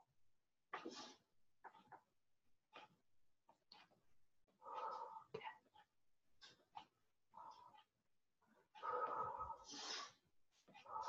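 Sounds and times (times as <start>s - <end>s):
faint whispering: 4.6s - 5.9s, 8.8s - 10.2s, 10.8s - 11.0s.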